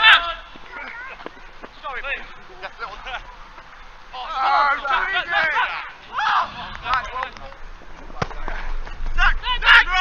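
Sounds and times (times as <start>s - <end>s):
men shouting: 0.0s - 0.5s, 2.9s - 7.2s
football being kicked: 8.1s - 8.6s.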